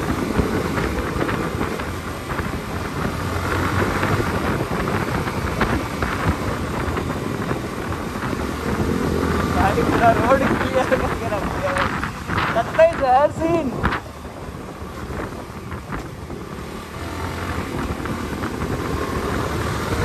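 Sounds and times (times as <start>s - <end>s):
motorcycle engine: 0.0s - 20.0s
road noise: 0.0s - 20.0s
wind rushing over microphone: 0.0s - 20.0s.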